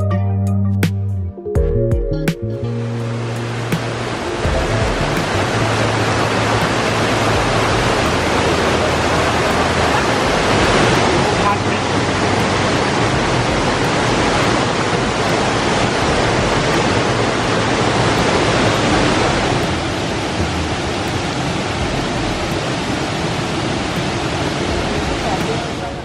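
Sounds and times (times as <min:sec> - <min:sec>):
waterfall rushing: 0:02.7 - 0:26.0.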